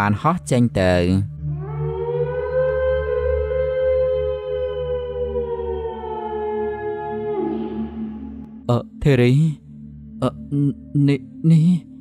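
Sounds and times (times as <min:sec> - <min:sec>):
eerie synthesized drone: 0:01.2 - 0:12.0
person speaking: 0:08.7 - 0:09.6, 0:10.2 - 0:12.0.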